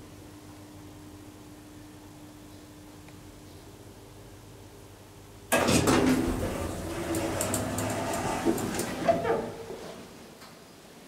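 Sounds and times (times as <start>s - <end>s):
elevator sliding doors opening: 5.5s - 10.2s.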